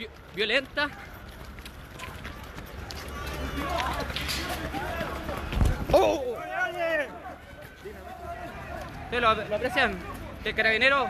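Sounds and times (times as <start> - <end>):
running footsteps: 0.0 - 11.0
voices shouting: 0.8 - 11.0.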